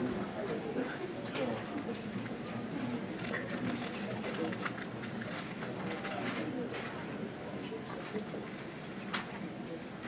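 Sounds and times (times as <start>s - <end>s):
murmur of people talking: 0.0s - 10.0s.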